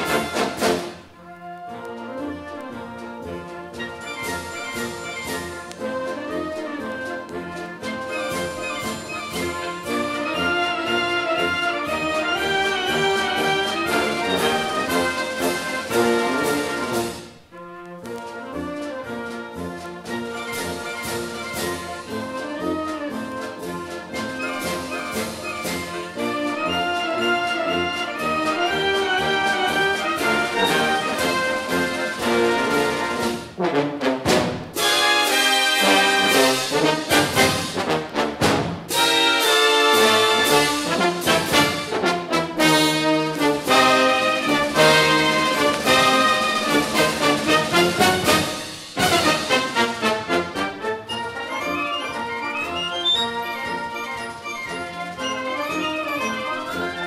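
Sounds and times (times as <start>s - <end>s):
orchestral music with brass: 0.0s - 57.0s.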